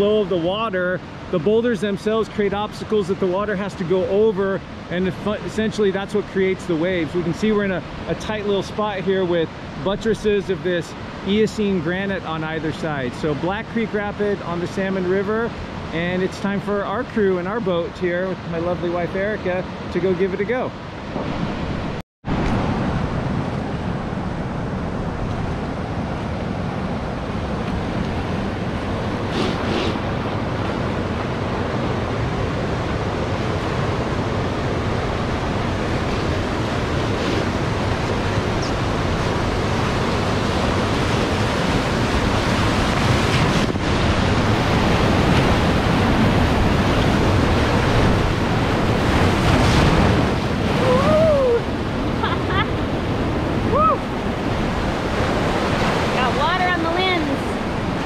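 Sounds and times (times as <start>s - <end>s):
waves breaking over boat: 0.0s - 58.0s
whitewater rushing: 0.0s - 58.0s.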